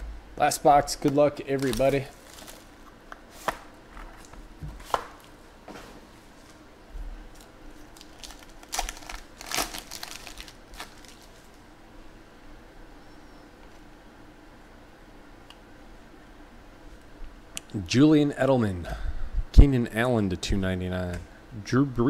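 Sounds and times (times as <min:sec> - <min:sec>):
foil pack tearing: 0:01.5 - 0:02.7, 0:07.8 - 0:11.6
plastic shrink-wrap crinkling: 0:01.5 - 0:02.8, 0:07.3 - 0:11.6.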